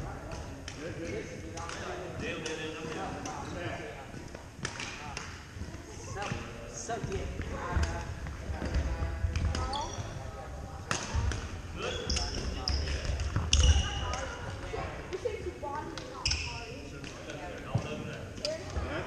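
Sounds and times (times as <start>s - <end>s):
sneakers squeaking on hardwood: 9.4s - 10.2s, 11.8s - 14.2s.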